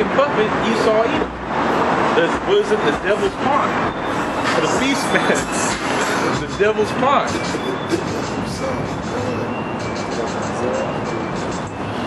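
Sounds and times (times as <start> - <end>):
street traffic rumble: 0.0 - 12.0
faint music: 2.6 - 12.0.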